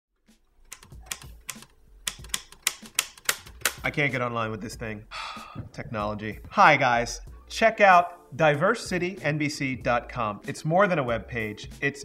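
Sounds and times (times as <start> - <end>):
typewriter keys clacking: 0.7 - 3.9.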